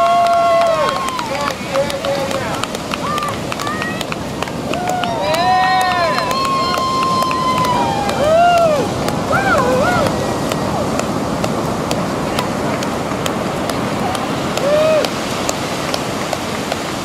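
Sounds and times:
people cheering and whooping: 0.0s - 11.1s, 13.9s - 15.3s
surf: 0.0s - 17.0s
wind: 0.0s - 17.0s.

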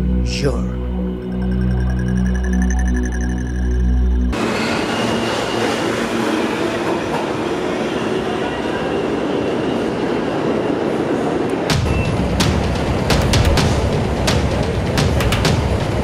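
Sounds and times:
subway train wheels rumbling: 4.4s - 16.0s.

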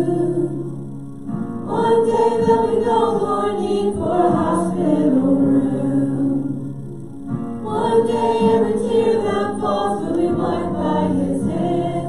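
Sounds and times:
several voices singing together: 0.0s - 0.9s, 1.6s - 6.7s, 7.6s - 12.0s.

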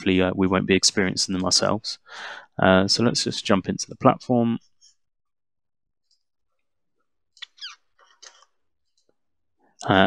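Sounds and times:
faint squeaks with clicks: 7.3s - 9.1s.

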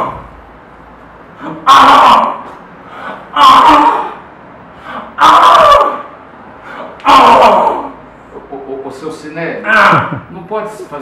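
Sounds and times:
man crying out in anguish: 3.3s - 4.2s, 7.0s - 8.0s, 9.6s - 10.3s.

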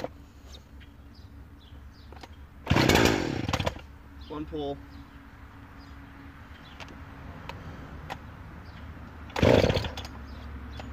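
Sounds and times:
chainsaw engine firing: 2.6s - 3.9s, 9.3s - 10.2s.

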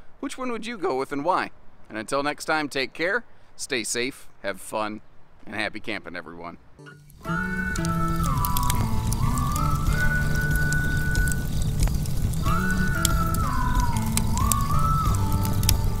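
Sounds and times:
sliding high melody: 6.8s - 16.0s
low held bass notes: 7.0s - 16.0s.

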